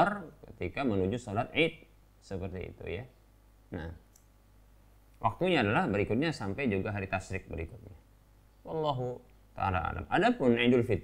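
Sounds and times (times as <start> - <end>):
steady low hum: 0.0 - 11.0
faint click: 4.1 - 4.4.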